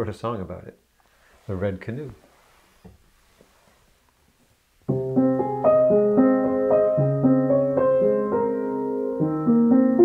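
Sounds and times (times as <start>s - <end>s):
solo piano playing: 4.9s - 10.0s.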